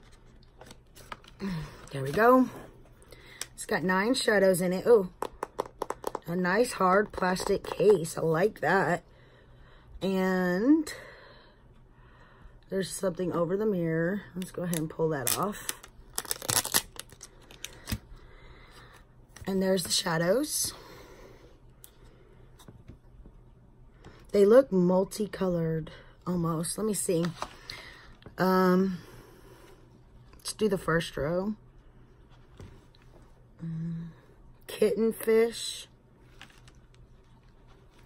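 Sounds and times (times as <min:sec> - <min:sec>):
packaging clicks and rustles: 0:14.7 - 0:18.0
protective sheet peeling crackles: 0:14.7 - 0:18.0
woman humming: 0:33.6 - 0:34.1.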